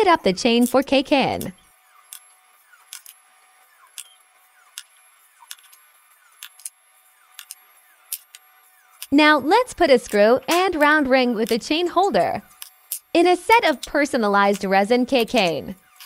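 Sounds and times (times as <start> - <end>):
hand drill clicking and scraping: 0.4 - 16.0.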